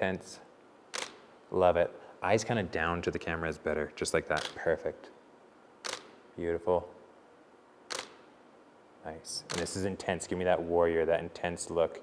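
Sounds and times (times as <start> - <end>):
camera shutter click: 0.9 - 1.3, 4.4 - 4.6, 5.8 - 6.2, 7.9 - 8.3, 9.5 - 9.8.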